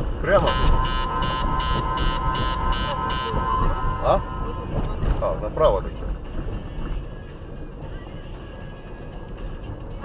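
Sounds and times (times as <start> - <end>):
road and engine rumble: 0.0 - 10.0
steady electronic tone: 0.2 - 5.5
rapid electronic beeping: 0.3 - 5.1.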